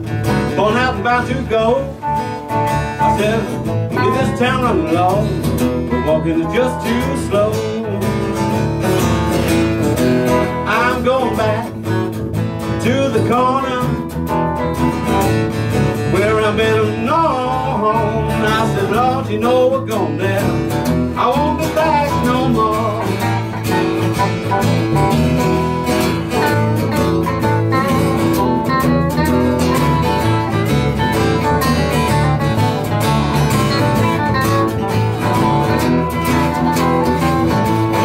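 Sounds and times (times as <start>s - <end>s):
strummed acoustic guitar: 0.0s - 38.0s.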